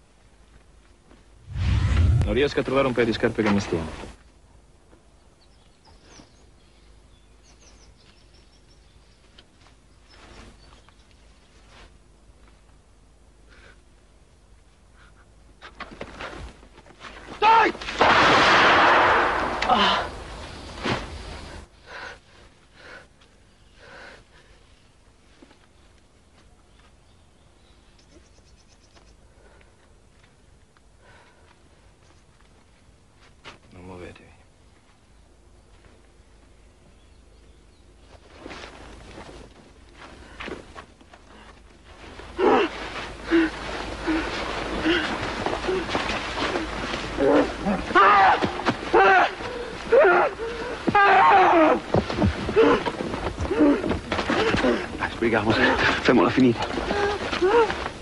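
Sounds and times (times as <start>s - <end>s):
sharp gunshot: 18.0s - 19.8s.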